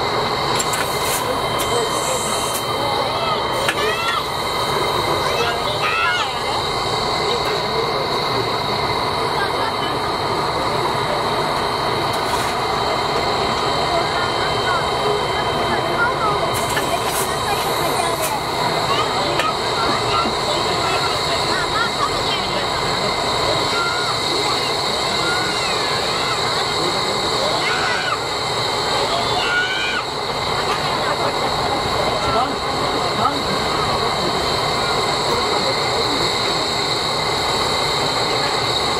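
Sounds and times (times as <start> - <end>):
crowd talking: 0.0 - 38.9
steam locomotive hissing and humming: 0.0 - 38.9.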